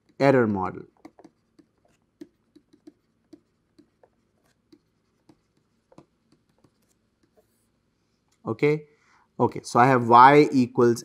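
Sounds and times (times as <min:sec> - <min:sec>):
stylus tapping on a tablet: 0:01.0 - 0:07.4.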